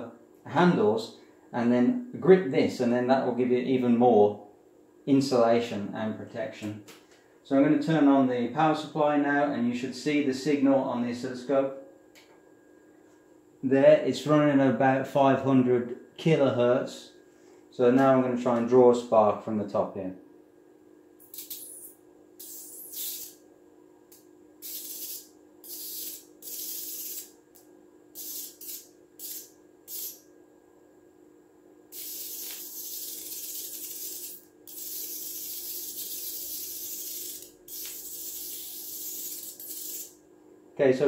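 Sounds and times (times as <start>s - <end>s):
faint steady hum: 0.0s - 41.0s
tesla coil sparks hissing: 21.2s - 23.4s, 24.6s - 27.4s, 28.1s - 30.2s, 31.9s - 40.2s.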